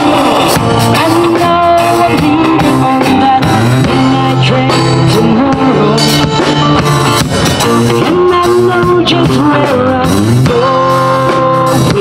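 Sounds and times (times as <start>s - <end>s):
drum kit: 0.0s - 12.0s
electric and acoustic guitars: 0.0s - 12.0s.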